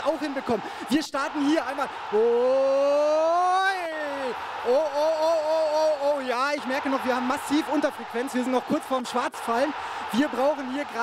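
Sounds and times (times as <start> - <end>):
man calling out long ohhh: 2.1 - 6.2.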